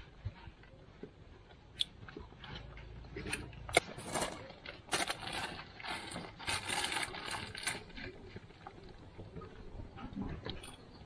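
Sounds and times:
plastic container rattling: 3.8s - 8.4s.

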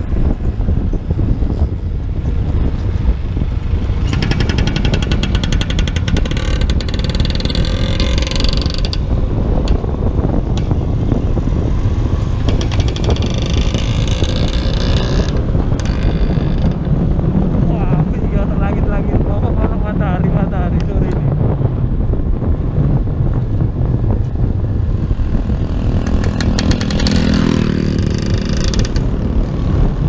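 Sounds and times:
wind rush on microphone: 0.0s - 30.0s
scooter engine running: 0.3s - 16.8s, 24.8s - 29.8s.

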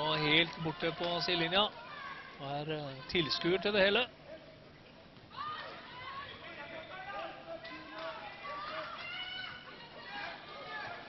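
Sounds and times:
arena noise: 0.0s - 11.0s.

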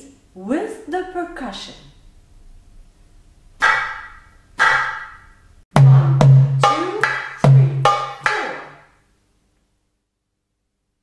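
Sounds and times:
sharp percussion strokes: 3.6s - 8.9s.

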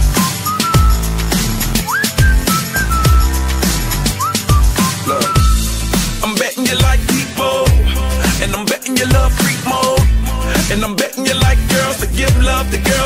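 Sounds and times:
whistled melody: 0.0s - 6.2s
deep bass hits: 7.7s - 9.4s.

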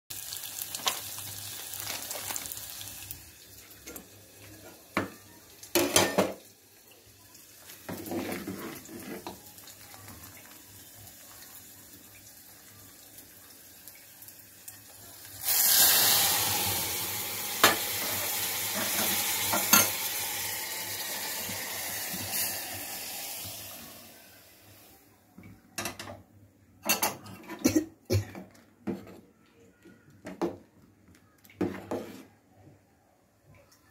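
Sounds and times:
hot oil sizzling: 0.1s - 25.0s.

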